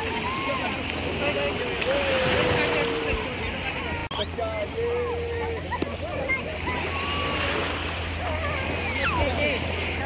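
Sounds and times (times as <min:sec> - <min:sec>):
distant chatter: 0:00.0 - 0:10.0
low steady hum: 0:00.0 - 0:10.0
water splashing and lapping: 0:00.0 - 0:10.0.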